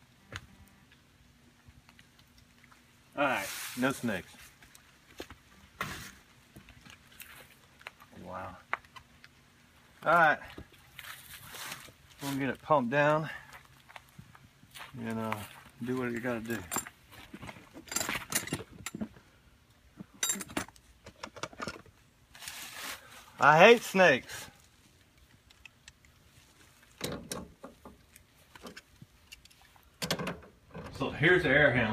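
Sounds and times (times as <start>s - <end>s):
leaves crunching: 3.2s - 5.3s, 10.8s - 12.6s
feet rustling in dry leaves: 3.3s - 4.6s, 10.8s - 12.5s, 22.4s - 24.8s
tools clicking and clinking: 17.8s - 19.1s, 20.2s - 21.9s.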